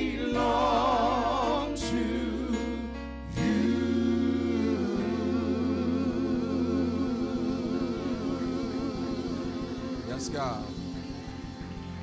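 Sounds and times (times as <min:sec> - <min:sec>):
organ sustained chord: 0:00.0 - 0:12.0.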